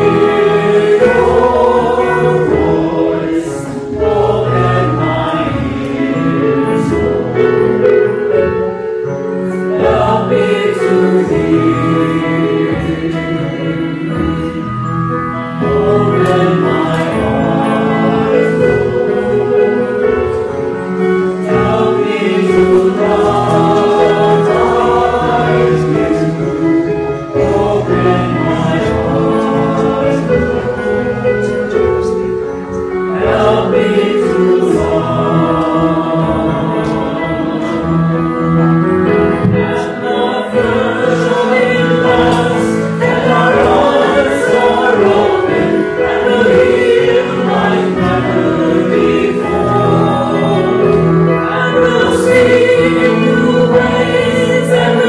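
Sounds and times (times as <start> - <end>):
choir singing a hymn: 0.0 - 55.0.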